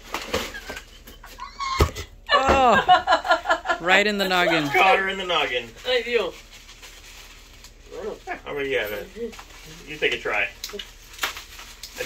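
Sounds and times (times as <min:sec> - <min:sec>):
cardboard and plastic rustling: 0:00.0 - 0:01.0, 0:04.3 - 0:12.0.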